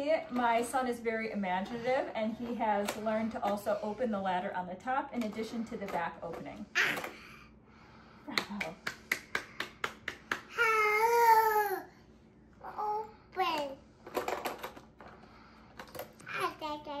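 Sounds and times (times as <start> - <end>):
hand claps: 8.3 - 10.7
toddler babbling and squealing: 10.6 - 11.9.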